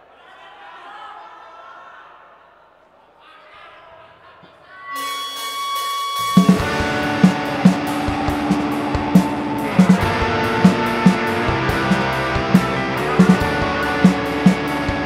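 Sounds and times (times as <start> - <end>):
held guitar note ringing: 5.0 - 15.0
rock band playing: 5.0 - 15.0
hard drum hits: 6.2 - 15.0.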